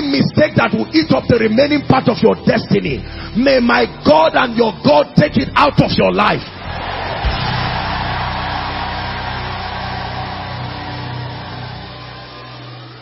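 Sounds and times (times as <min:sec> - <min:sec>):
crowd cheering and shouting: 0:06.5 - 0:13.0.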